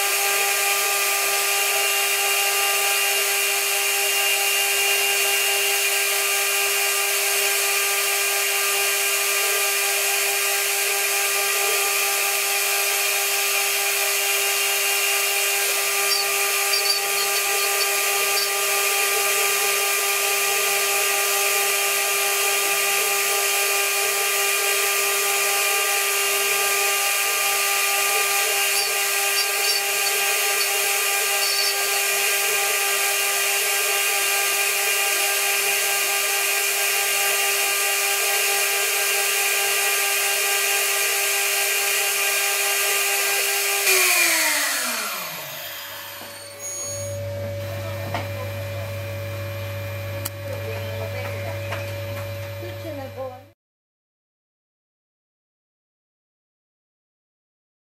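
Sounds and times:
router spindle high-pitched whine: 0.0s - 53.2s.

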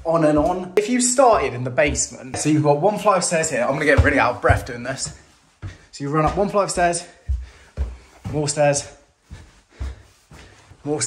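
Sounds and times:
person speaking: 0.0s - 5.3s, 5.9s - 7.4s, 8.2s - 9.0s
footsteps on carpeted stairs: 0.0s - 11.0s.

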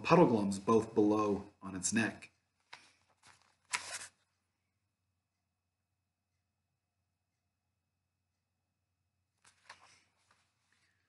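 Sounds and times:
paper rustling: 2.6s - 4.4s, 9.4s - 11.0s.

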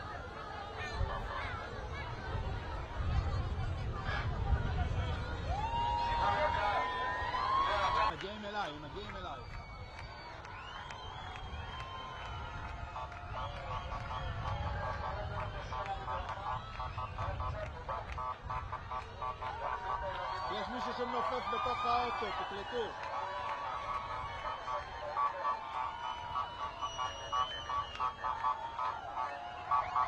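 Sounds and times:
crowd cheering and shouting: 0.0s - 30.0s.

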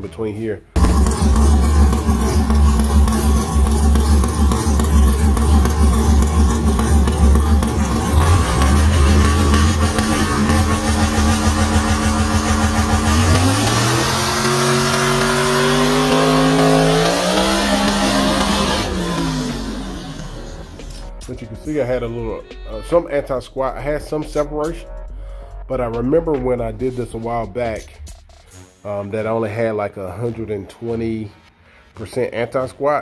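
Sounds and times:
drag car engine idling and launching: 0.8s - 21.2s.

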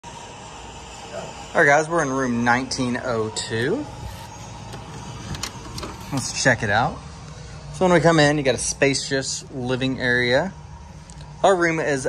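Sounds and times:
key-card lock releasing: 3.4s - 6.3s
door latch clicks: 3.5s - 6.3s.

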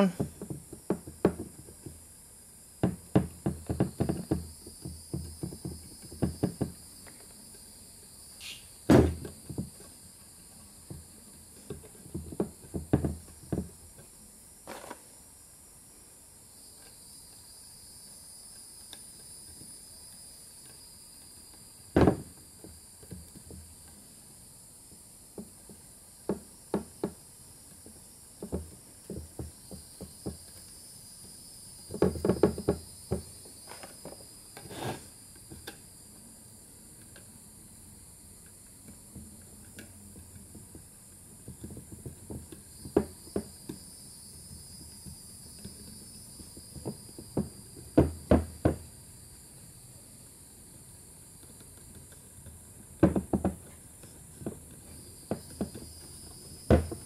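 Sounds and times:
faint steady hiss: 0.0s - 57.0s.

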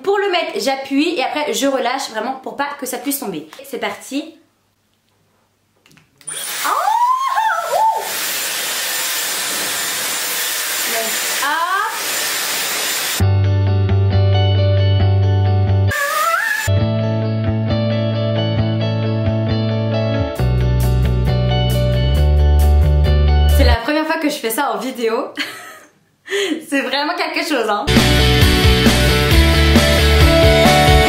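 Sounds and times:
hair dryer blowing air: 7.7s - 13.2s
music with strong bass line: 16.7s - 23.8s, 27.9s - 31.0s.

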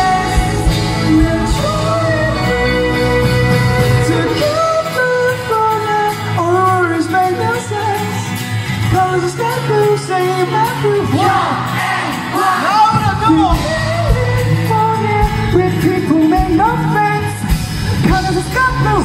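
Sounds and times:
live rock band playing: 0.0s - 19.0s
man singing: 0.0s - 19.0s
crowd shouting: 10.9s - 13.6s
drum beat: 11.0s - 19.0s.

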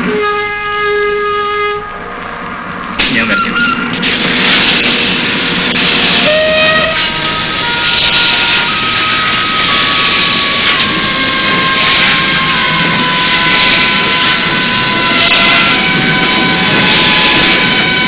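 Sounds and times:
train rushing along track: 0.0s - 18.0s.

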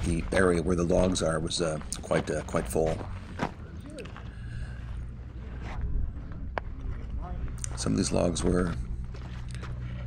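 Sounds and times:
wind rumble on microphone: 4.8s - 10.0s.

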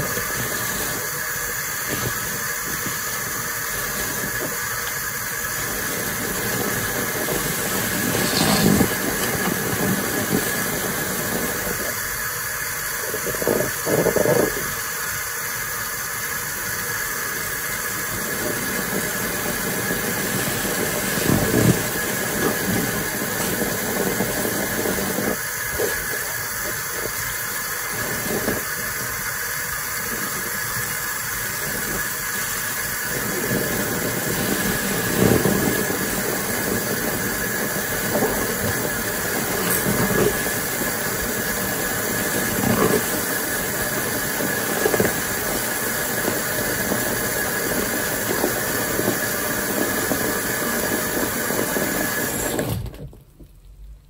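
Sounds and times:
foam fizzing hiss: 0.0s - 53.0s.

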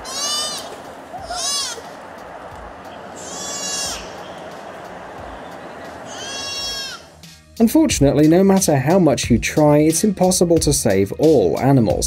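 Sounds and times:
deer fawn bleating: 0.0s - 2.0s, 3.1s - 4.4s, 6.0s - 7.1s.

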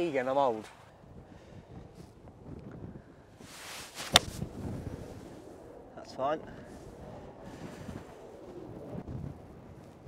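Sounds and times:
wind on microphone: 0.0s - 10.0s
golf club striking ball: 4.0s - 4.5s.

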